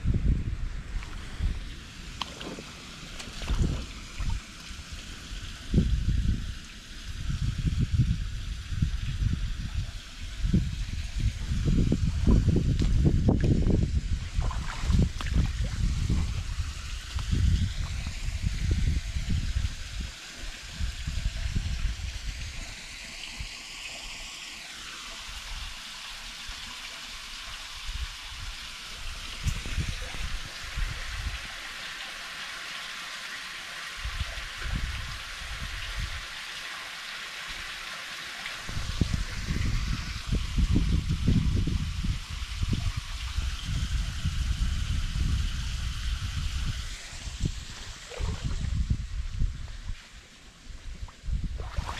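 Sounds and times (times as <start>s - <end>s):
water trickling over stones: 0.9s - 51.9s.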